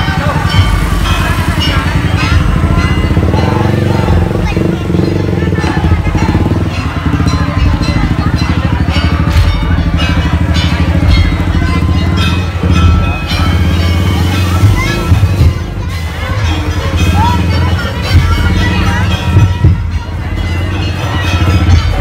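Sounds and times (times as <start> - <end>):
crowd voices: 0.0 - 22.0
motorcycle engines running: 0.0 - 22.0
rhythmic percussion music: 0.0 - 22.0.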